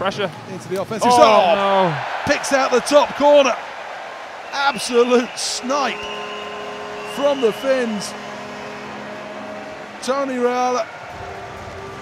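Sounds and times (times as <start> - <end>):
arena crowd cheering: 1.0 - 12.0
faint held tones: 4.6 - 11.4.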